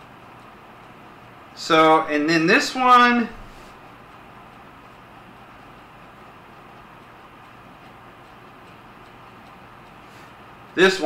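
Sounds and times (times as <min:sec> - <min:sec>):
faint regular ticking: 0:00.0 - 0:11.0
steady low hum: 0:00.0 - 0:11.0.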